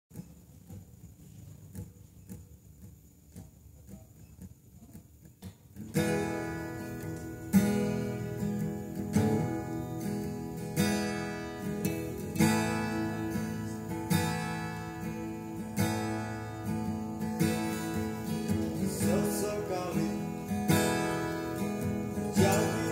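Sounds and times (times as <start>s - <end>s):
acoustic guitar strumming: 0.1s - 22.9s.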